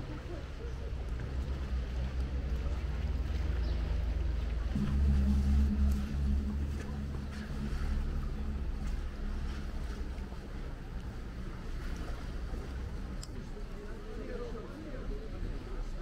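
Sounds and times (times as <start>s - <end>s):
motorboat engine humming: 0.0s - 16.0s.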